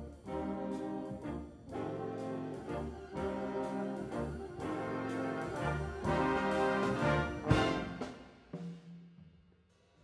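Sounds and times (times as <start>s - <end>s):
orchestra with jazz band playing: 0.0s - 8.6s.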